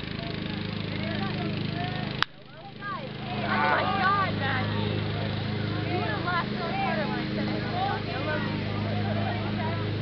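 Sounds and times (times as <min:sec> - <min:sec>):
people shouting and calling out: 0:00.3 - 0:10.0.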